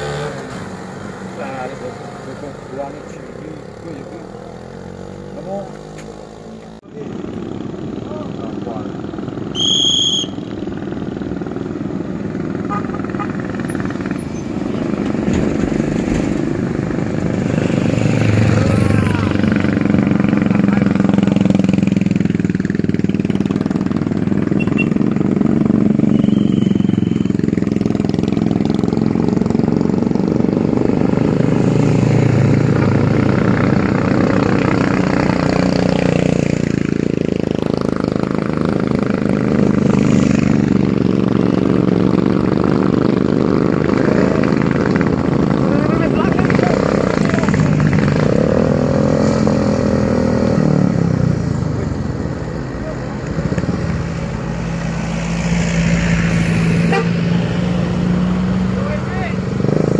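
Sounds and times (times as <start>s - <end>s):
motorcycles riding past: 0.0s - 59.9s.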